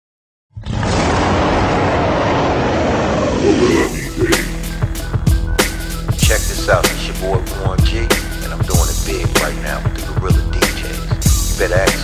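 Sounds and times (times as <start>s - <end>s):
deep animal roar: 0.6s - 4.8s
hip-hop beat: 3.7s - 12.0s.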